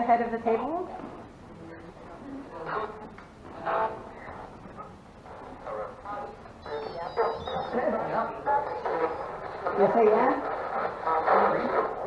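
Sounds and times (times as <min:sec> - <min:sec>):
murmur of voices: 0:00.0 - 0:12.0
high electronic chirping: 0:06.2 - 0:09.7.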